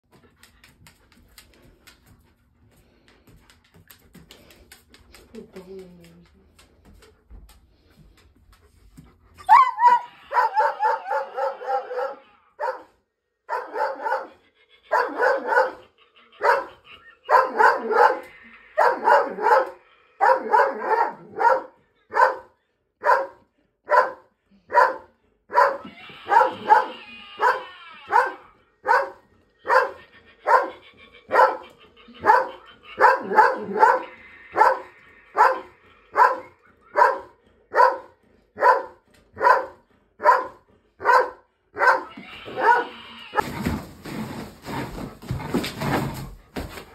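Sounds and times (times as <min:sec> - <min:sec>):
dog barking: 0:09.5 - 0:12.9, 0:13.5 - 0:15.8, 0:16.4 - 0:43.0.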